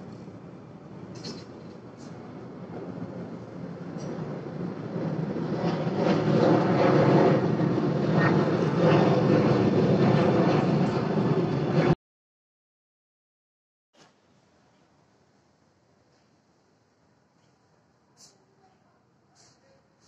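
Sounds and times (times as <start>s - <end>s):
airliner engines rumbling overhead: 0.0s - 12.0s.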